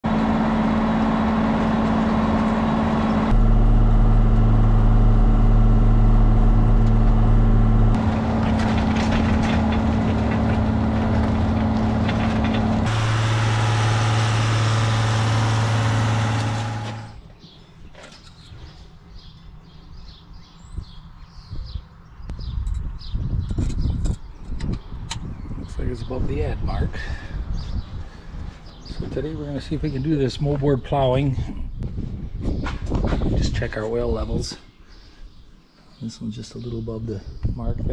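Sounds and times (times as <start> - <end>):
tractor diesel engine droning: 0.0 - 17.2.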